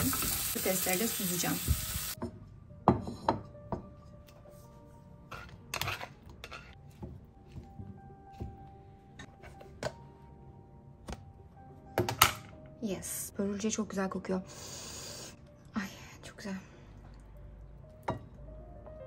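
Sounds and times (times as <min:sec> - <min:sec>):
soft background music: 0:00.0 - 0:19.0.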